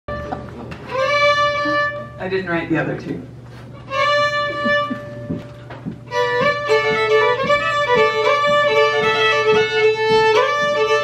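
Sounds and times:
fiddle long bowed note: 0.1s - 2.2s, 3.9s - 5.5s, 6.1s - 11.0s.

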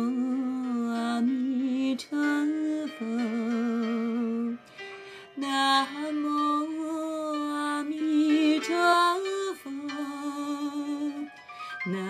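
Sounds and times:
person singing long wavering notes: 0.0s - 4.7s, 5.3s - 12.0s
soft accompaniment: 0.0s - 12.0s.

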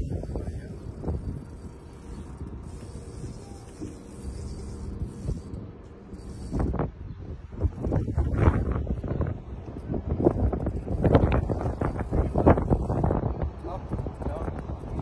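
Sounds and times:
fishing reel clicking and winding: 0.0s - 6.8s, 10.2s - 15.0s.

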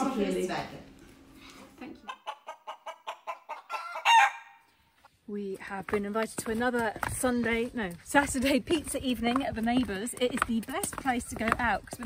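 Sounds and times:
chicken clucking: 2.0s - 4.6s.

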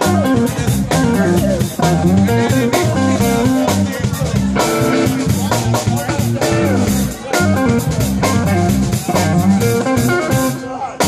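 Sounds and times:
bass guitar line: 0.0s - 11.0s
drum kit with cymbals: 0.0s - 11.0s
guitar melody: 0.0s - 11.0s.

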